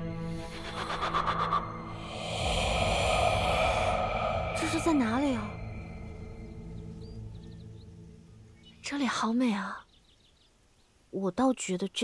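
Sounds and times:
faint sustained music tones: 0:00.0 - 0:11.0
soft airy rushing noise: 0:00.3 - 0:07.3.

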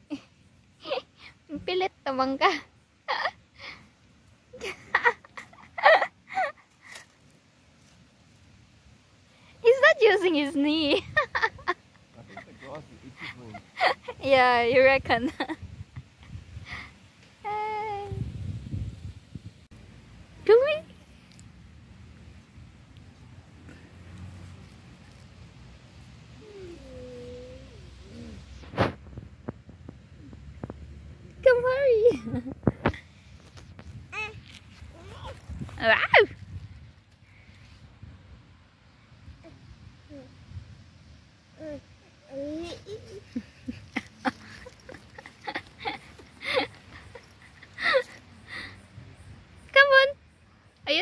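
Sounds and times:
outdoor background: 0:00.0 - 0:51.0.

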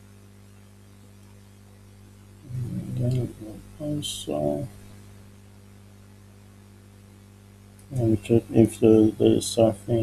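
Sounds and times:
faint hiss: 0:00.0 - 0:10.0
low electrical hum: 0:00.0 - 0:10.0.

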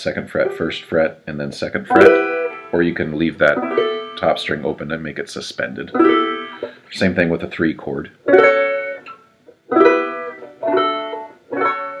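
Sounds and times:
banjo chords ringing: 0:00.0 - 0:12.0.

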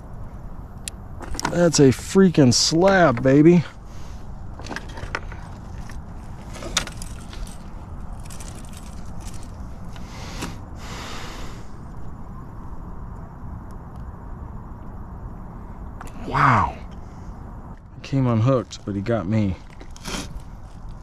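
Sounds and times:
low rumble: 0:10.6 - 0:18.9.

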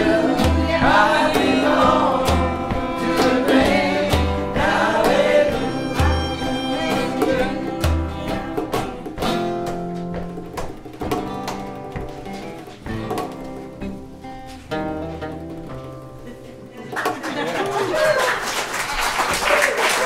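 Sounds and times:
acoustic string band playing: 0:00.0 - 0:16.0.

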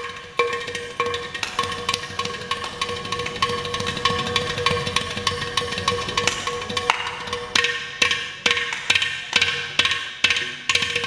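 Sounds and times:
percussion strokes: 0:00.0 - 0:11.0.

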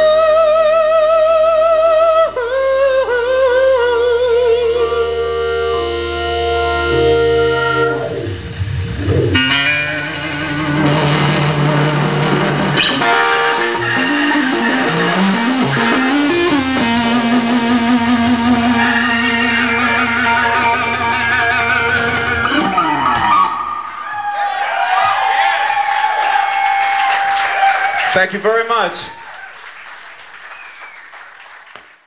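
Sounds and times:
distorted lead electric guitar: 0:04.4 - 0:24.2
blues-rock band playing: 0:04.8 - 0:24.5.

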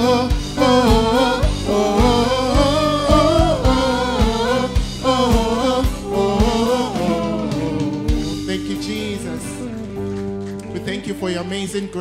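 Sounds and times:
singers holding long notes: 0:00.0 - 0:10.0
guitar and drums band: 0:00.0 - 0:12.0.

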